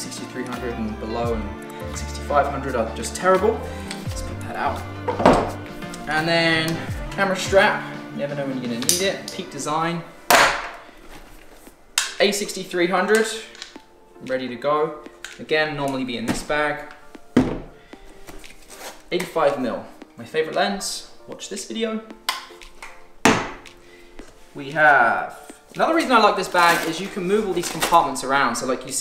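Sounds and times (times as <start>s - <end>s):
faint music: 0.0s - 29.0s
loud rustle of backpack: 18.0s - 19.2s, 25.3s - 28.2s.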